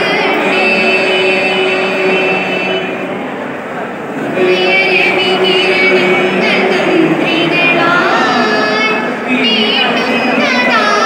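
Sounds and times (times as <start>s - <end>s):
group singing a sustained note: 0.0s - 11.0s.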